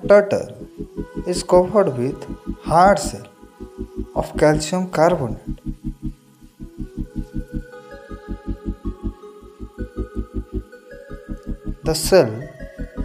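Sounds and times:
fast low pulse: 0.0s - 12.2s
sustained held chords: 0.0s - 13.0s.

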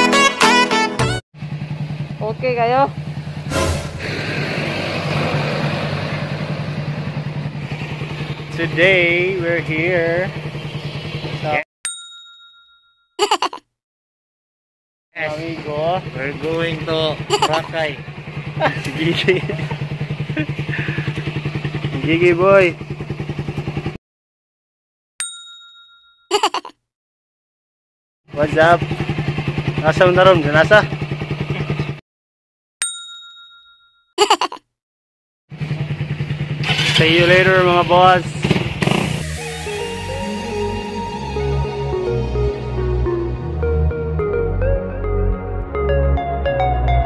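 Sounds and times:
motorcycle engine idling: 1.4s - 3.5s, 4.6s - 11.6s, 15.2s - 24.0s, 28.3s - 32.0s, 35.5s - 39.2s
sharp burst sound effect: 3.4s - 5.6s
brief rush of noise: 3.5s - 5.2s.

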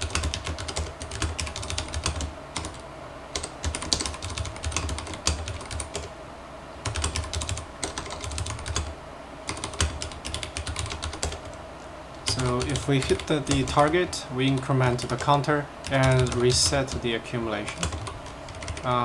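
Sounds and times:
mechanical keyboard typing: 0.0s - 2.8s, 3.4s - 6.1s, 6.8s - 8.9s, 9.5s - 11.6s, 12.3s - 17.0s, 17.6s - 19.0s.

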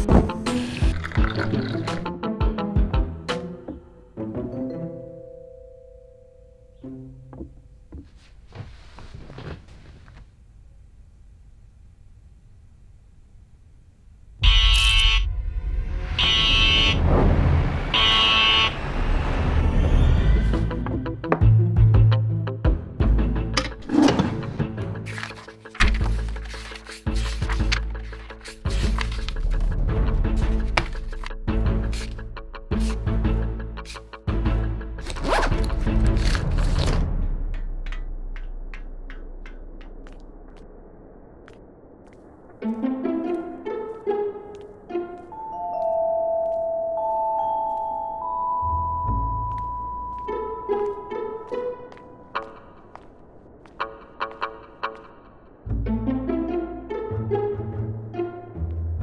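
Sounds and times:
film score music: 0.0s - 9.6s, 14.4s - 59.0s
loud buzzing alarm blasts: 14.4s - 19.7s
tone with soft ticks: 45.4s - 50.3s.

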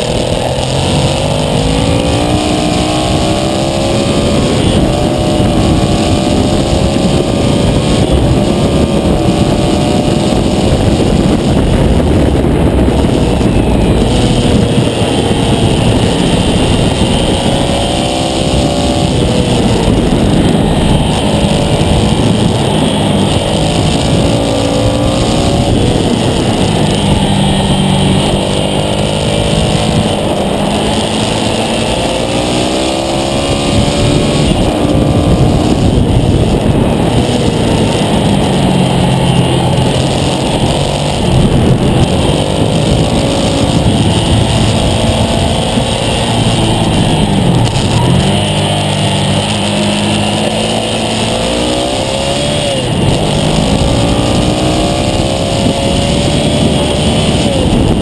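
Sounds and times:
motorcycle engine revving: 0.0s - 58.0s
wind rush on microphone: 0.0s - 58.0s.

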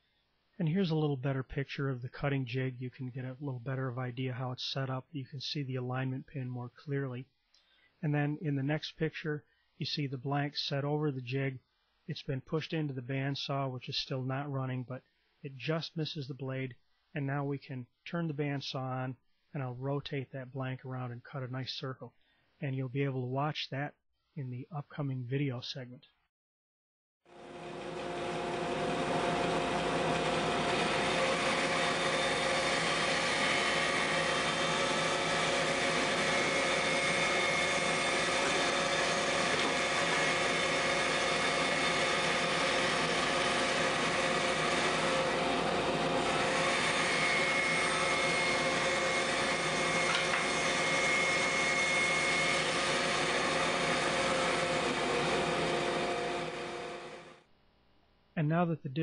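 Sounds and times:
bandsaw cutting wood: 27.4s - 57.4s.

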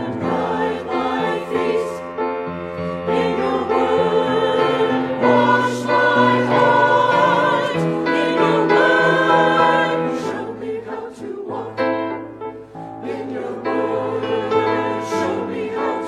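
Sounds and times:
choir singing in parts: 0.0s - 16.0s.

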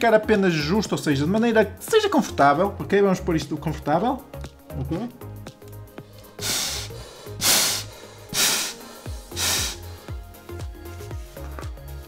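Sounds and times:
background music: 0.0s - 12.0s
hissing breaths through snorkel: 6.0s - 10.3s.

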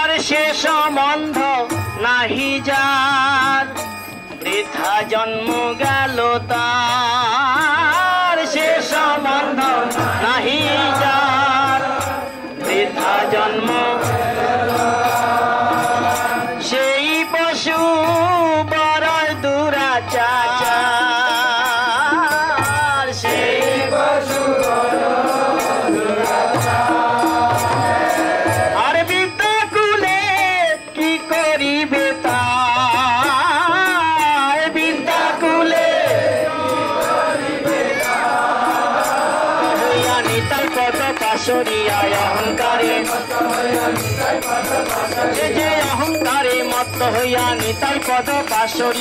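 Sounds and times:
group chanting over a steady beat: 0.0s - 30.6s, 31.2s - 49.0s
hand drum beat: 20.2s - 30.5s, 37.7s - 49.0s.

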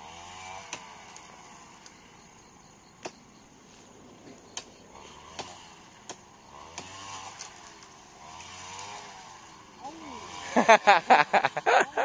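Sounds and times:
faint motor vehicle engine passing: 3.8s - 12.0s.

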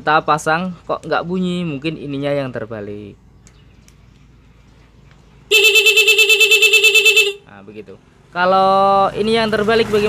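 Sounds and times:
pulsing motorcycle horn: 5.5s - 7.5s.

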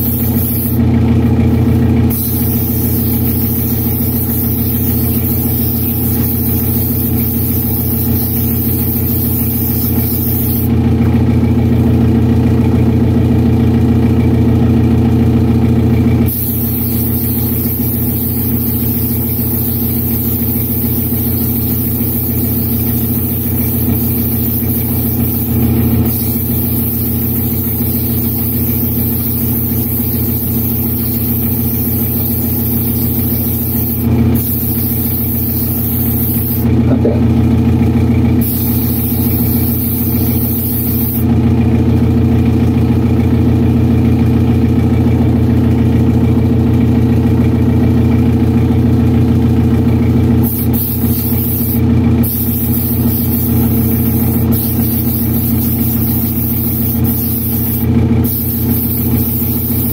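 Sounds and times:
airbrush spraying hiss: 0.0s - 0.8s, 2.1s - 10.7s, 16.3s - 36.7s, 38.4s - 41.2s, 50.4s - 59.9s
exhaust fan humming: 0.0s - 59.9s.

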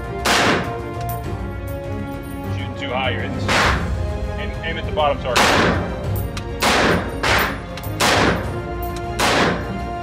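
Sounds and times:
background music: 0.0s - 10.0s
rifle shots echoing indoors: 0.2s - 0.8s, 3.4s - 3.9s, 5.4s - 5.9s, 6.6s - 9.8s.

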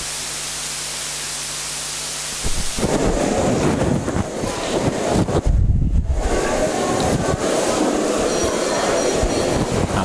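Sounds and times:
loud rumbling noise: 2.2s - 10.0s.

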